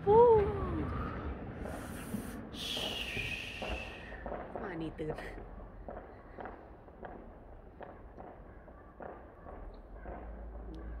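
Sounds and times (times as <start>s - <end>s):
distant fireworks bangs: 1.2s - 11.0s.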